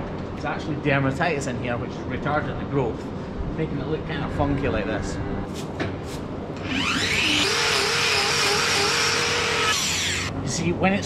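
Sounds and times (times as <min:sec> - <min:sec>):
angle grinder whining: 0:06.6 - 0:10.3.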